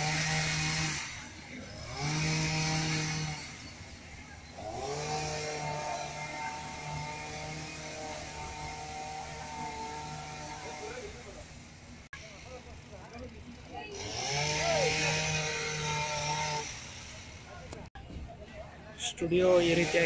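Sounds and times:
small motorbike engine revving: 0.0 - 17.9, 19.5 - 20.0.

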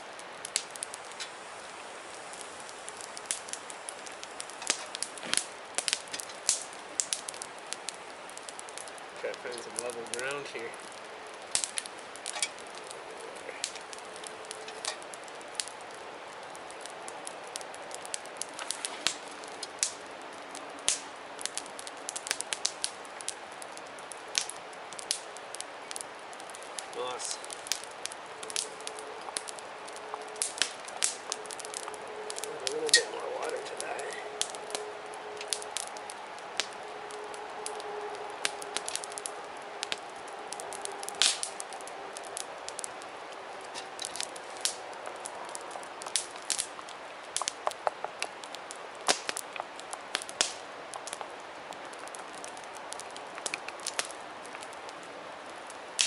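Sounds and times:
campfire crackling: 0.0 - 56.0
sharp pops of burning sticks: 0.0 - 56.0.

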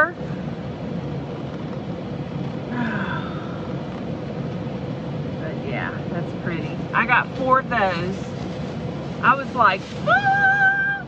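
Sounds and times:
car cabin hum and hiss: 0.0 - 11.0
faint constant tone: 0.0 - 11.0.

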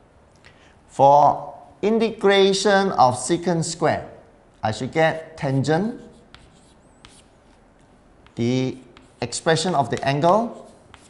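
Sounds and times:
chalk scratching on chalkboard: 5.1 - 11.0
chalk tapping on board: 5.5 - 11.0.

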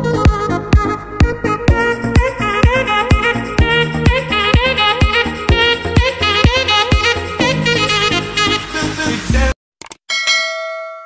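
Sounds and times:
background music: 0.0 - 9.6
bell-like ding: 10.1 - 11.0.

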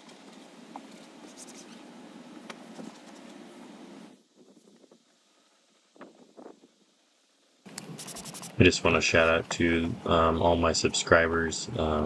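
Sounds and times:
towel rubbing on door trim: 7.9 - 8.7.

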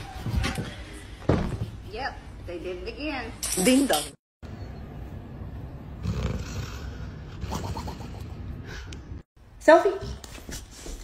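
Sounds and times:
dog snoring: 6.0 - 7.1.

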